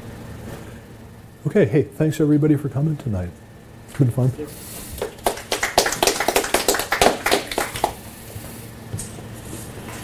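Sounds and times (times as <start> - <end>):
audience applauding: 5.0 - 8.1.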